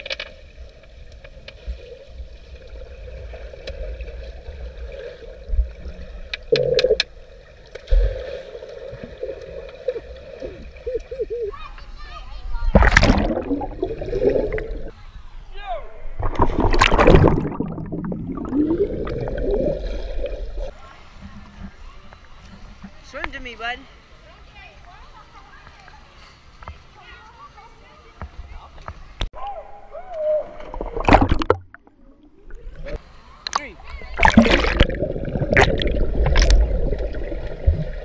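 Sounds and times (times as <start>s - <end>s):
children splashing into pool: 12.6s - 14.9s, 16.2s - 20.4s, 34.1s - 37.7s
water sloshing: 12.6s - 14.9s, 16.2s - 23.2s, 30.6s - 38.0s
underwater rush of water: 12.6s - 15.0s, 16.2s - 23.0s, 30.6s - 38.0s.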